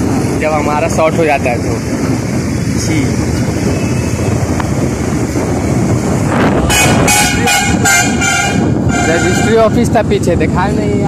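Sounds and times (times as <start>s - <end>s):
motorcycle road rumble: 0.0s - 11.0s.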